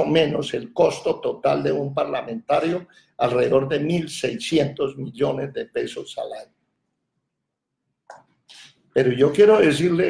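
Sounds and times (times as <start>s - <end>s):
man speaking: 0.0s - 6.5s, 8.5s - 10.0s.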